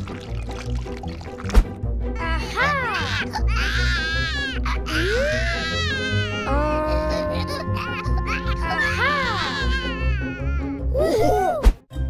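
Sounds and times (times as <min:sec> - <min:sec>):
background music: 0:00.0 - 0:12.0
baby-like crying wails: 0:02.2 - 0:11.4.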